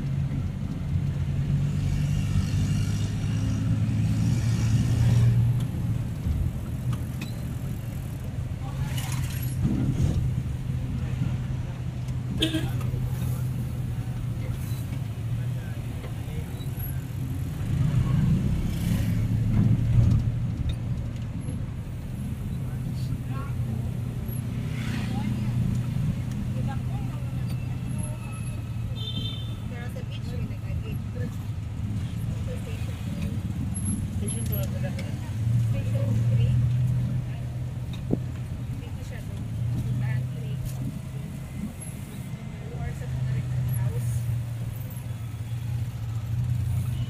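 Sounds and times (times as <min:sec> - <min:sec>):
road noise: 0:00.0 - 0:47.0
vehicle engine hum: 0:00.0 - 0:47.0.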